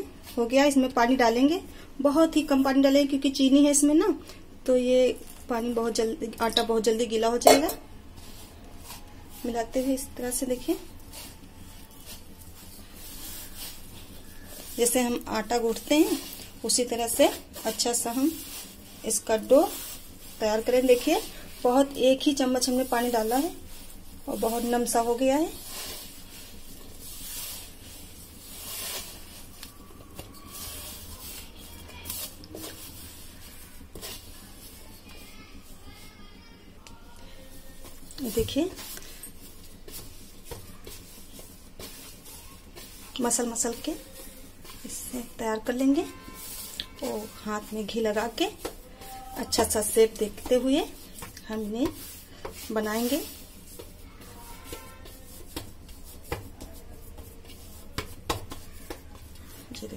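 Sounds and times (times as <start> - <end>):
hand rubbing dry mix in bowl: 0.0 - 59.9.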